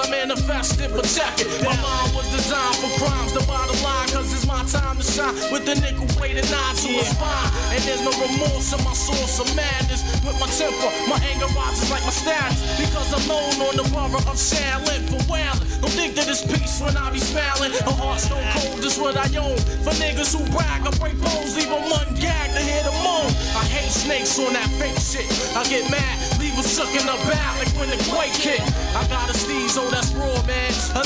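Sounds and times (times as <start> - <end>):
heavy bass line: 0.0 - 31.0
rapping over a beat: 0.0 - 31.0.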